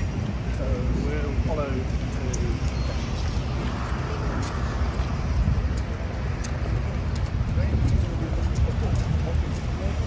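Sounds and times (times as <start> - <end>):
light footsteps: 0.0 - 10.0
murmur of people: 0.0 - 10.0
steady low rumble: 0.0 - 10.0.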